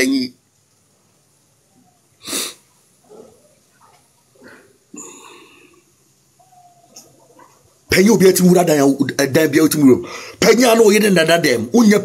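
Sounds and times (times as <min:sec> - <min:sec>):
faint mouth sounds: 0:01.8 - 0:07.7
man's sharp breath burst: 0:02.2 - 0:02.7, 0:10.0 - 0:10.4.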